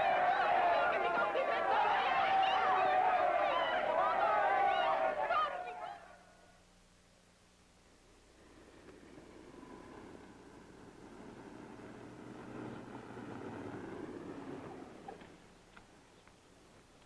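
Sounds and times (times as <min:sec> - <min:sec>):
car engine and tyre noise: 0:07.4 - 0:17.0
faint clicks: 0:15.1 - 0:17.0.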